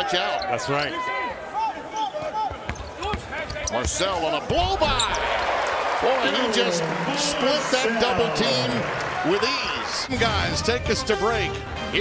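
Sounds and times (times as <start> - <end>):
broadcast commentary: 6.0 - 12.0.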